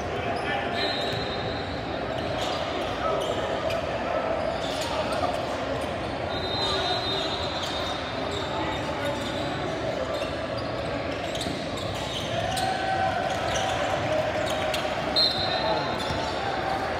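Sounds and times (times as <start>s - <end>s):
voices of players and spectators: 0.0s - 16.9s
sneakers squeaking: 0.1s - 16.9s.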